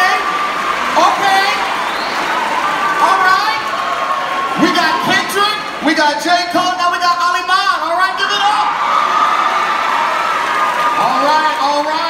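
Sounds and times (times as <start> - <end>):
audience applauding and cheering: 0.0 - 12.0.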